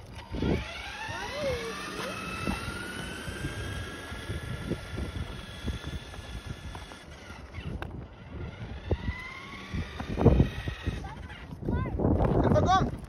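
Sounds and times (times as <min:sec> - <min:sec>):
electric motor whine: 0:00.0 - 0:11.6
wind: 0:00.0 - 0:13.0.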